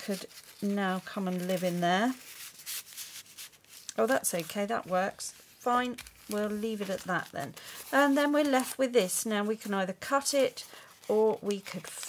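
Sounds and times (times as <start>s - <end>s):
paper rubbing and rustling: 0.0s - 12.0s.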